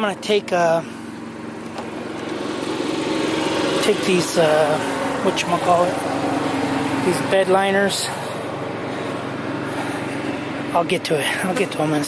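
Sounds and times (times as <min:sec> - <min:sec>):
generator engine running: 0:00.0 - 0:12.0.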